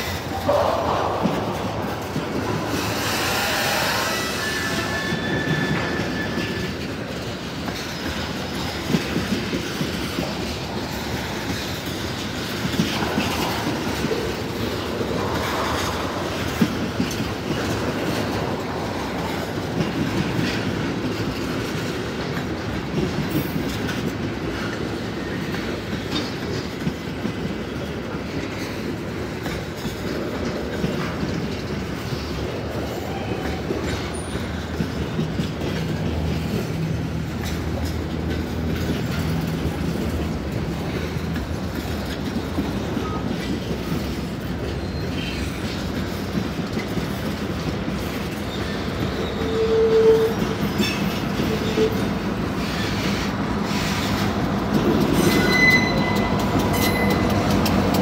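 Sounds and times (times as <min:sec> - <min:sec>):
sharp clacks of train wheels: 0:00.0 - 0:58.0
train wheels rumbling on rails: 0:00.0 - 0:58.0.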